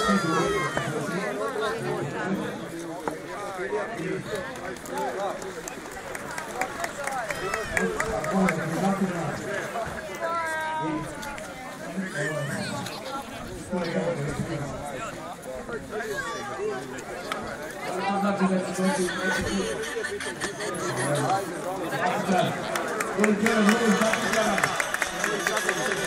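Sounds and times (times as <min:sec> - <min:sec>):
crowd talking: 0:00.0 - 0:26.0.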